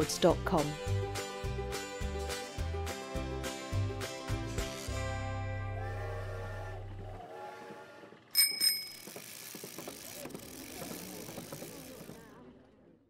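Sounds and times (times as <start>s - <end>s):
music: 0.0s - 8.2s
bicycle bell ringing: 8.4s - 10.0s.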